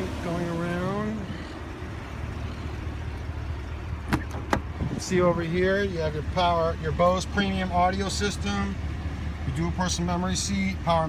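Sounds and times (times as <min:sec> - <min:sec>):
steady low rumble: 0:00.0 - 0:11.0
car door handle and latch clicks: 0:04.1 - 0:04.7.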